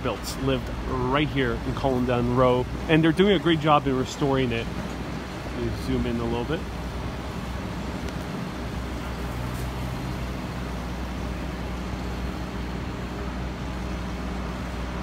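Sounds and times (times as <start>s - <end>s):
low engine hum: 0.0s - 15.0s
street traffic noise: 0.0s - 15.0s.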